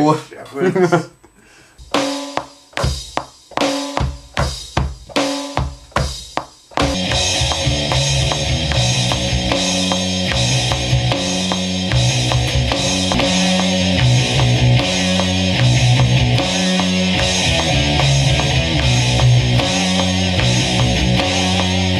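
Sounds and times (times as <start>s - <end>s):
drum hits ringing: 2.3s - 20.1s
bass notes: 6.9s - 21.9s
full band playing: 6.9s - 21.9s.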